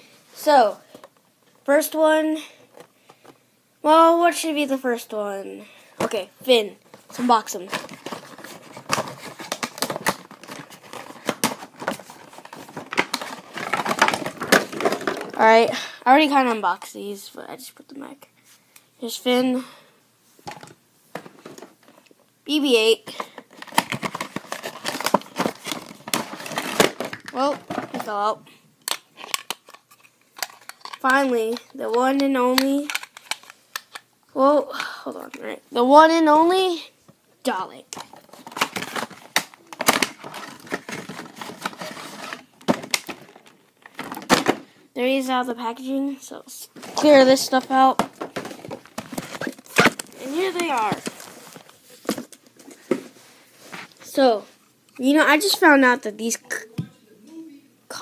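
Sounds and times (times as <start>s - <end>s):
handling taps and rustles: 6.9s - 15.6s, 23.1s - 28.3s, 46.7s - 54.1s
plastic packaging crinkling: 7.0s - 15.6s, 23.1s - 28.2s, 37.9s - 44.6s, 46.8s - 52.7s.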